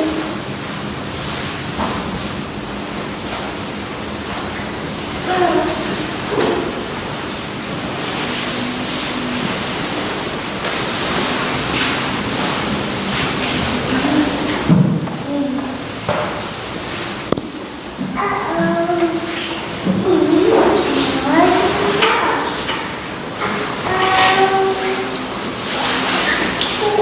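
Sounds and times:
room tone hiss: 0.0 - 27.0
faint voices: 5.1 - 7.1, 12.8 - 15.9.

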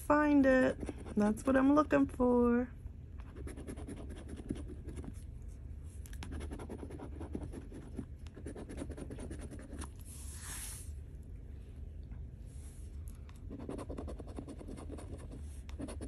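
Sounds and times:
coin scratching lottery ticket: 13.6 - 16.0.

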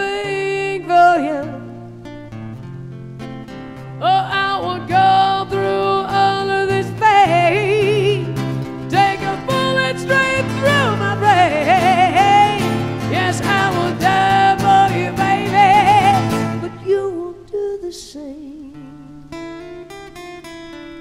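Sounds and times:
woman singing a pop ballad: 0.0 - 1.8, 4.0 - 19.7
guitar accompaniment: 0.0 - 21.0.

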